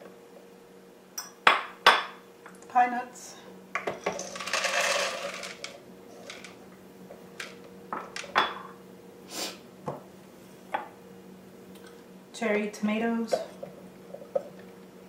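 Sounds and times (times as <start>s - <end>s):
nuts pouring into plastic bowl: 4.1s - 6.6s.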